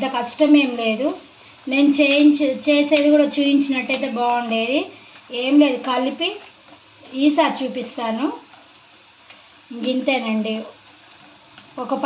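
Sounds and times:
woman speaking: 0:00.0 - 0:08.5, 0:09.7 - 0:10.8, 0:11.8 - 0:12.0
faint cooking sounds: 0:00.0 - 0:12.0.

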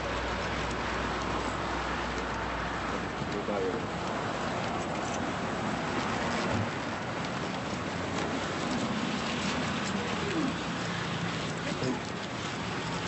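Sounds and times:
street noise: 0:00.0 - 0:13.0.

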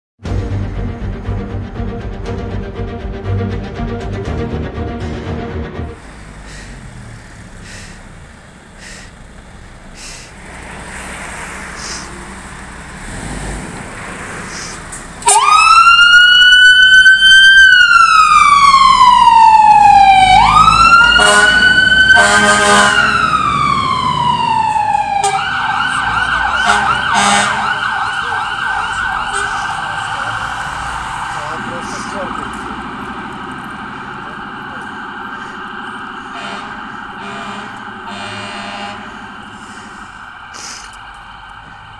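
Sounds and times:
fire engine siren wailing: 0:05.9 - 0:12.9, 0:13.8 - 0:41.9.

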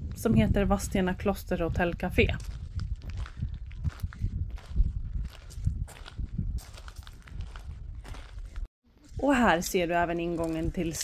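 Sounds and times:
footsteps crunching on gravel: 0:01.6 - 0:11.0.

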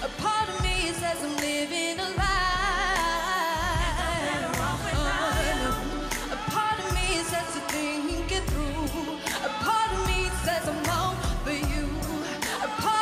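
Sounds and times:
drum beat and bass: 0:00.0 - 0:13.0
women singing: 0:00.0 - 0:13.0.

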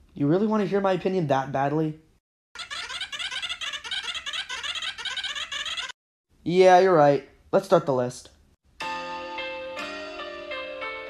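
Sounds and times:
high-pitched squeaky gibberish chatter: 0:02.6 - 0:06.0.

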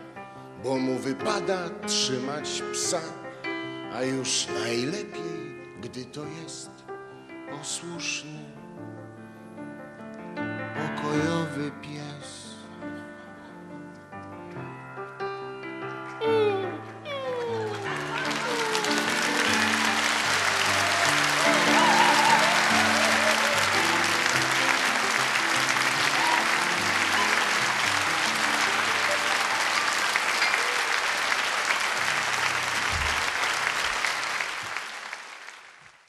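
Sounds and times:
audience applauding: 0:16.4 - 0:36.0.

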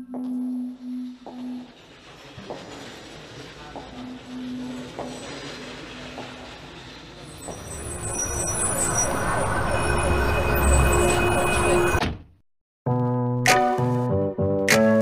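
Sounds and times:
steady held tones: 0:07.3 - 0:12.0.

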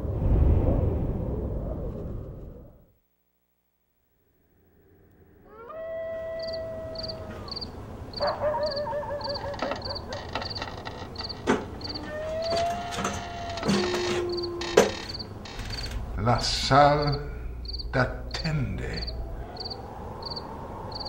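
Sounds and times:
crickets chirping: 0:04.2 - 0:21.0
wavering howl-like tones: 0:15.9 - 0:21.0.

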